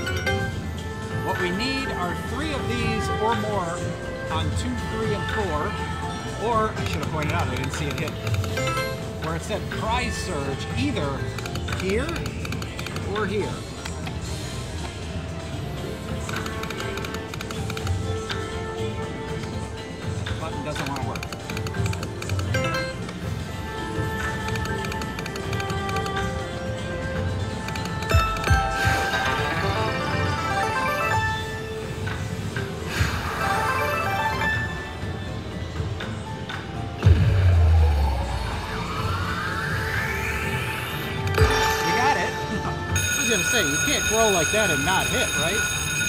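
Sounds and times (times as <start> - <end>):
slot machine game music and jingles: 0.0 - 37.2, 38.0 - 46.0
rising sweep: 37.0 - 41.9.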